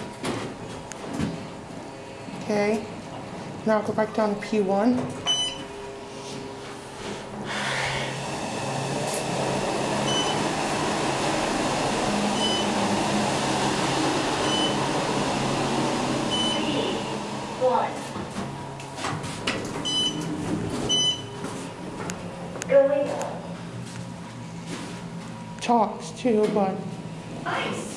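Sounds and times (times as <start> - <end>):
elevator car hum and rush: 0.0 - 24.6
elevator doors clicking and clunking: 4.8 - 5.8, 8.2 - 22.6.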